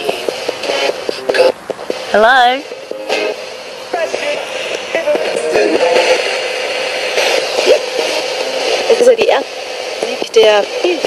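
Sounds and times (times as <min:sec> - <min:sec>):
radio static hiss: 0:00.0 - 0:11.0
snatches of broadcast music: 0:00.0 - 0:11.0.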